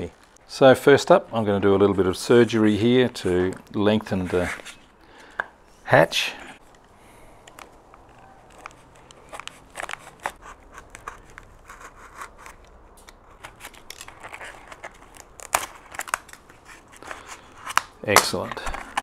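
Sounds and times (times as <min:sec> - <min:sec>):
knife cutting foam crackling: 0:08.4 - 0:18.4.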